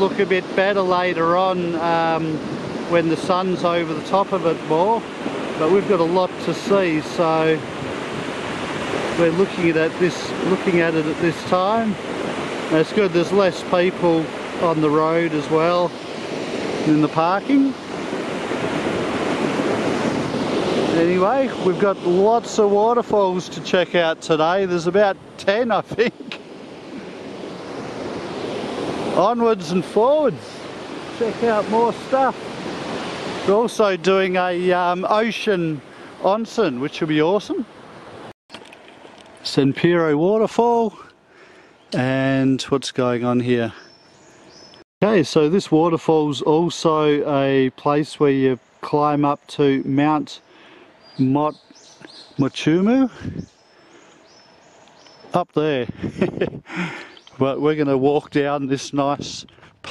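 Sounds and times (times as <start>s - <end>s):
waterfall rushing: 0.0s - 38.3s
high whistled bird calls: 43.8s - 44.8s, 48.6s - 52.5s, 57.0s - 57.4s.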